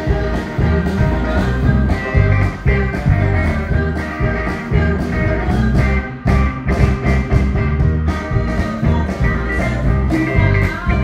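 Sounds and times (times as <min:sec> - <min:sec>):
woman singing: 0:00.0 - 0:06.9, 0:08.0 - 0:11.0
live rock band playing: 0:00.0 - 0:11.0.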